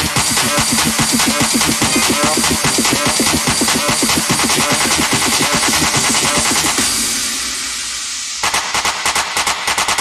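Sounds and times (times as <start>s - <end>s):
noise sweep: 0.0s - 10.0s.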